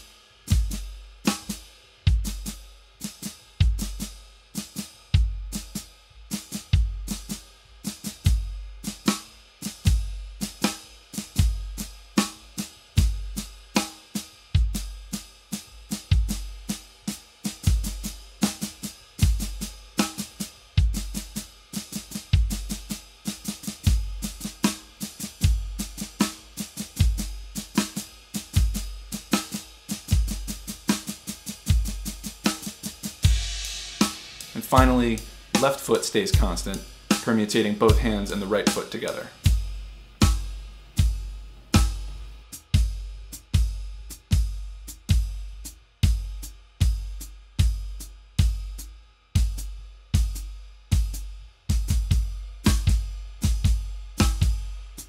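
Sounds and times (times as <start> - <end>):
drum kit playing: 0.0 - 55.0.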